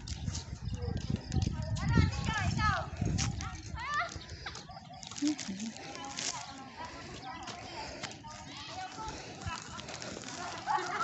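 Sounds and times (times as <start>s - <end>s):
footsteps through grass: 0.0s - 11.0s.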